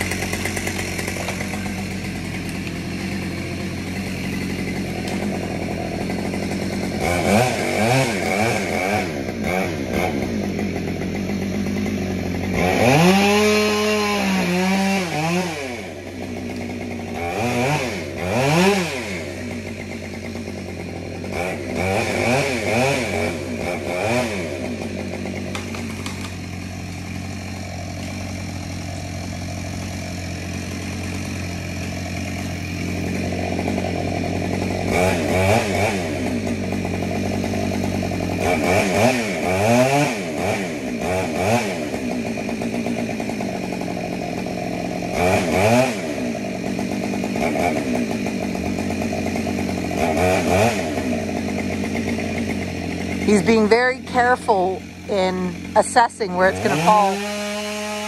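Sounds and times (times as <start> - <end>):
chainsaw idling and revving: 0.0 - 58.0.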